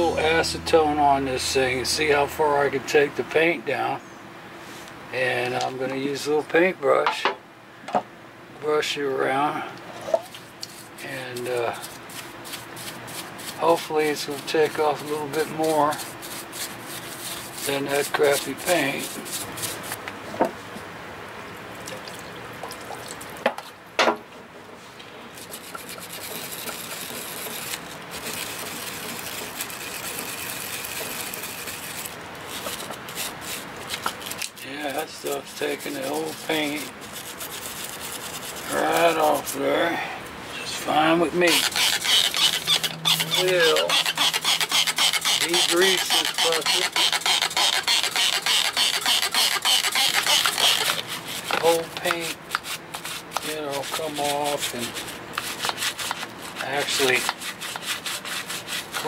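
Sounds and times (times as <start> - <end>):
paintbrush scrubbing metal: 10.6 - 20.0, 25.4 - 39.7, 40.7 - 59.0
spray bottle squirting: 41.5 - 51.1.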